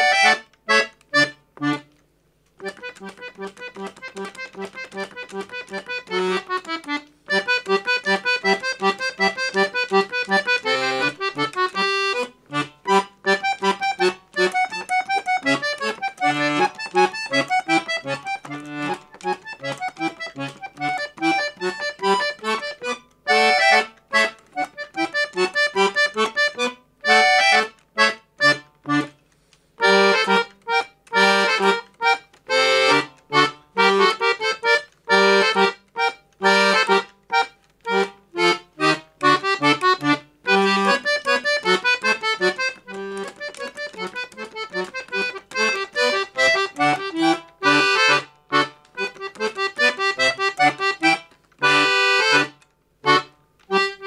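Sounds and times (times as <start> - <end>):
accordion playing quick notes: 0.0 - 1.9, 2.6 - 29.2, 29.8 - 54.0.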